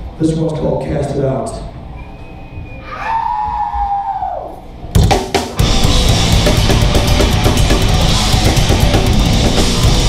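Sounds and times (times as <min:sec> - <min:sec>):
distorted guitars and bass: 0:04.6 - 0:10.0
band hits: 0:04.9 - 0:10.0
drum kit fast rhythm: 0:05.0 - 0:10.0.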